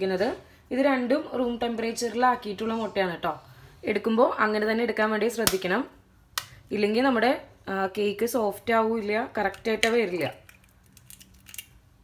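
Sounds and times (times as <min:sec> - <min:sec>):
eggshell cracking: 0:09.5 - 0:11.8.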